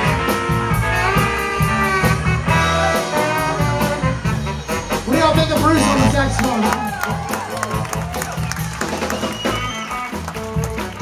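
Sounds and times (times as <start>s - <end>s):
saxophone: 0.0s - 5.2s, 8.9s - 11.0s
drums: 0.0s - 11.0s
electric bass: 0.0s - 11.0s.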